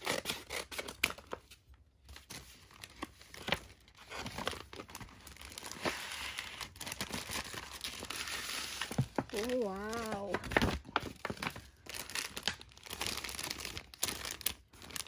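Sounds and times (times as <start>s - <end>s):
paper packaging tearing and crinkling: 0.0s - 1.6s, 2.2s - 15.0s.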